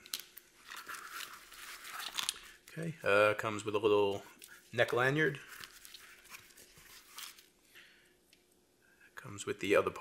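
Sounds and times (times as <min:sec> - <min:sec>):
plastic packaging crinkling: 0:00.0 - 0:02.8, 0:04.4 - 0:07.6.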